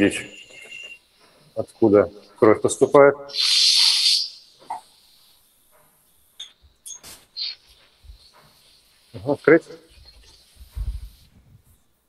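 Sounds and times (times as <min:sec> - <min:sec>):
loud hiss: 0:00.0 - 0:05.6, 0:07.0 - 0:11.7.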